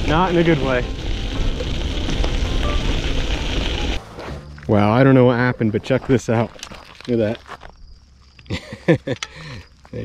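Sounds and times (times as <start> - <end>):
bicycle tyres rolling on dirt: 0.0 - 10.0.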